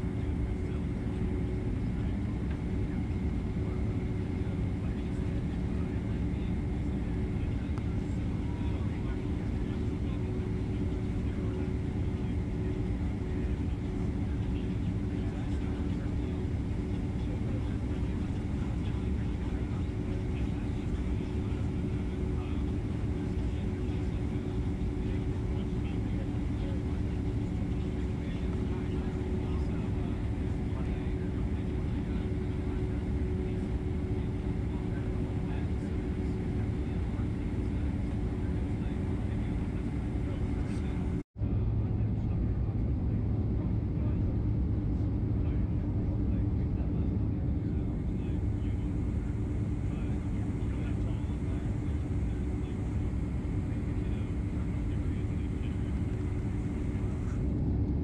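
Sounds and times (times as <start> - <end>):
jet engines rumbling in cabin: 0.0 - 58.0.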